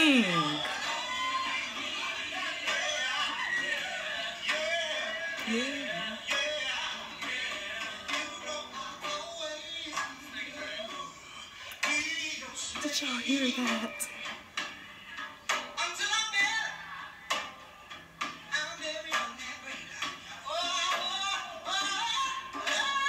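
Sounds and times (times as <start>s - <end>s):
man singing into a microphone: 2.0s - 14.4s, 18.5s - 23.0s.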